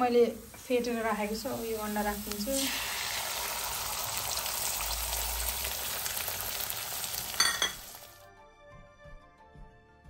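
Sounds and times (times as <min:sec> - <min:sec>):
egg sizzling in hot oil: 0:00.0 - 0:08.2.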